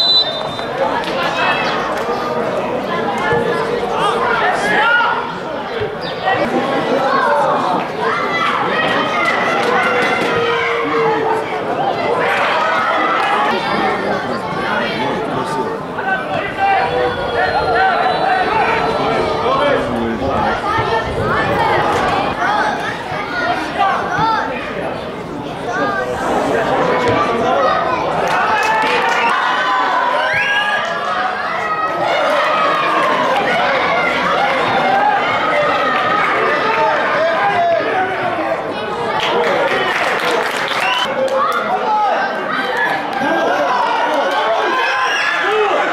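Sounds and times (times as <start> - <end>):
voices shouting and calling: 0.0 - 40.2, 40.8 - 45.9
crowd chatter: 0.0 - 45.9.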